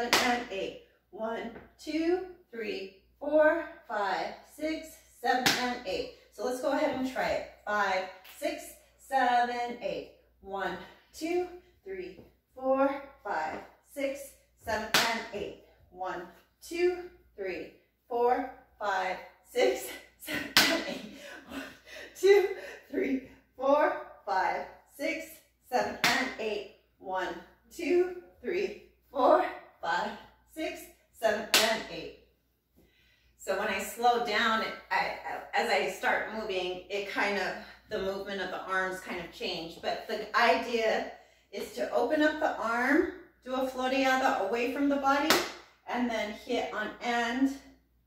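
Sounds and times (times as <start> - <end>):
woman counting aloud: 0.0 - 32.1, 33.4 - 47.6
hand slapping hip: 5.3 - 5.8, 14.7 - 15.3, 20.3 - 20.9, 25.8 - 26.4, 31.5 - 31.9, 45.3 - 45.7.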